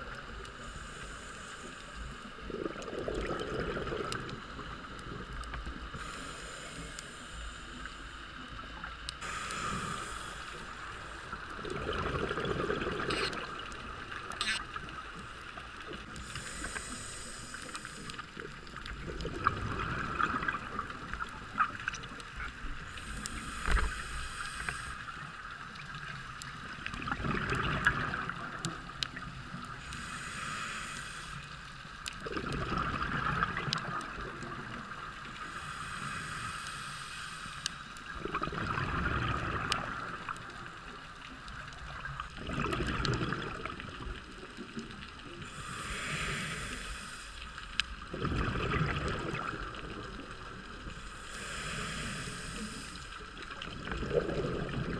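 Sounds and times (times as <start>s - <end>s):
regulator inhalation hiss: 0.5s - 2.4s, 5.9s - 8.5s, 9.2s - 11.5s, 16.2s - 18.5s, 22.8s - 25.5s, 29.7s - 31.9s, 35.4s - 38.0s, 45.4s - 48.0s, 50.8s - 53.4s
exhalation bubbling: 11.6s - 13.5s, 53.8s - 54.9s.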